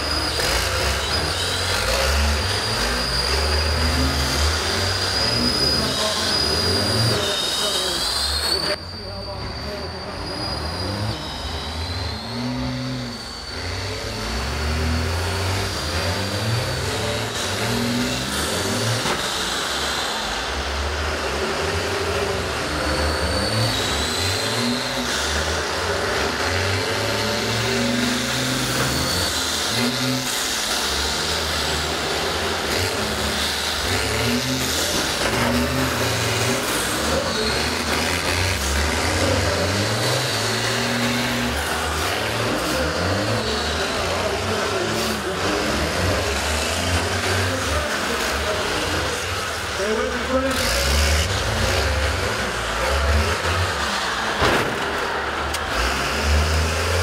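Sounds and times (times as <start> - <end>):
bus engines revving: 0.0 - 57.0.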